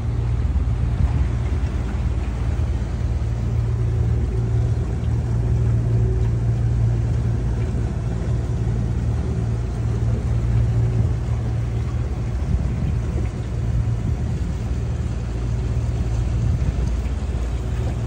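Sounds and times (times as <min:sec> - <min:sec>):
boat engine rumble: 0:00.0 - 0:18.0.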